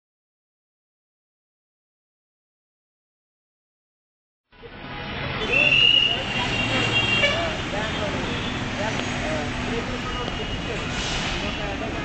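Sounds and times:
road traffic: 4.5s - 12.0s
background voices: 6.3s - 12.0s.

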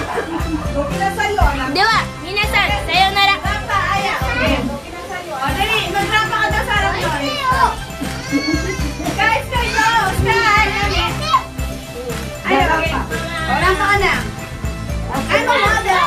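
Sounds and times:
adult voices: 0.0s - 16.0s
background music: 0.0s - 16.0s
children calling and chattering: 0.0s - 16.0s.

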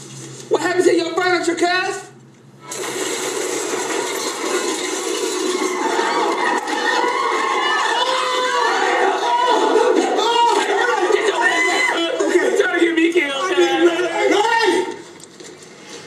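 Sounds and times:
voices shouting over one another: 5.6s - 15.0s.

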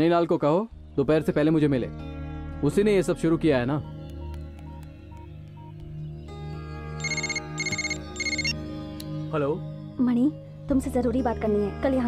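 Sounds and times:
phone ringtone electronic trill: 7.0s - 8.6s.

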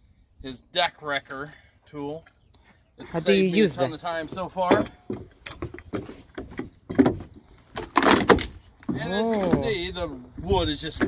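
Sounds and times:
wooden board creaking and cracking: 5.1s - 9.9s.

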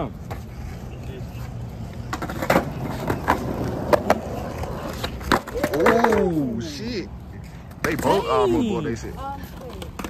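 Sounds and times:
skateboard wheels rumbling on concrete: 0.0s - 10.0s
skateboard clacks: 1.9s - 6.4s, 9.5s - 10.0s.

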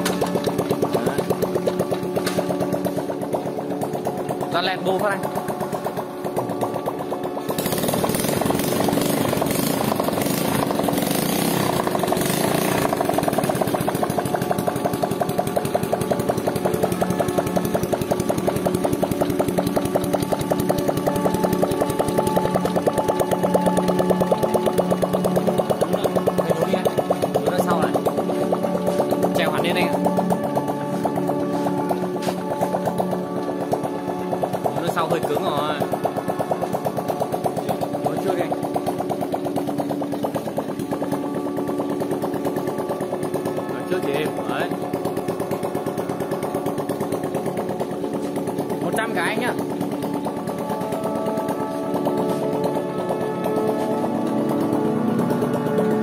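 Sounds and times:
motorcycle engine idling: 0.0s - 56.0s.

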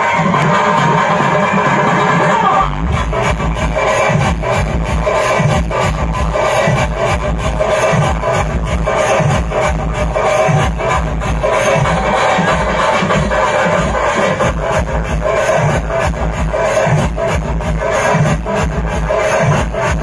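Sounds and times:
loud dance music over loudspeakers: 0.0s - 20.0s.

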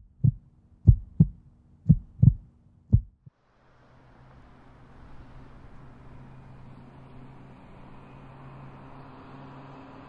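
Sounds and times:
heartbeat thumps: 0.0s - 3.3s.

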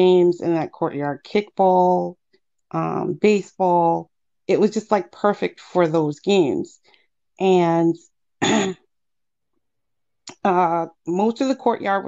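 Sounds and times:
person clearing throat: 8.4s - 8.9s.

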